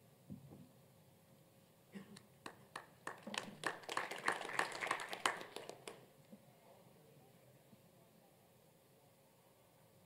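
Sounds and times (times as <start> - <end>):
audience clapping: 2.4 - 6.0.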